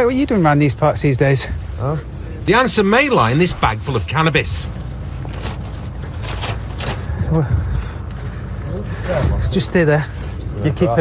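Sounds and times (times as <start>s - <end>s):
steady low hum: 0.0s - 11.0s
plastic bag rustling: 3.2s - 7.2s.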